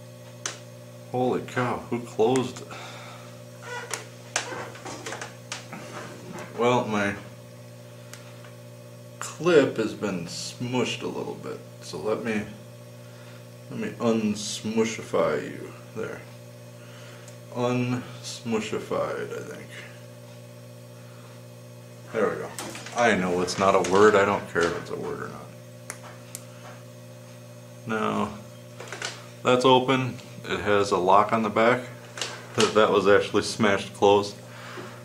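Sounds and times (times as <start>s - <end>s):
appliance motor humming: 0.0s - 35.0s.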